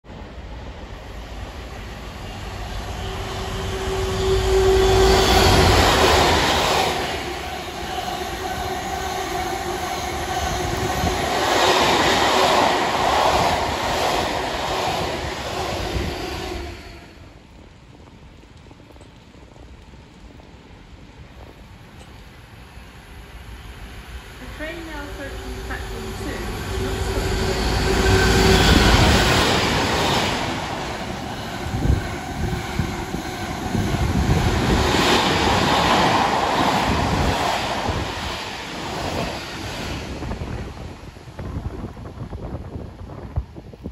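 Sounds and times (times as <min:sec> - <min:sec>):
train wheels rumbling on rail: 0:00.1 - 0:43.9
station background: 0:24.0 - 0:38.9.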